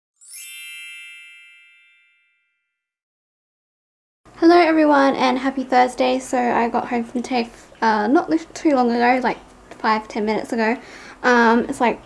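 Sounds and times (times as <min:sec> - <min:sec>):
bell-like chime: 0:00.2 - 0:02.9.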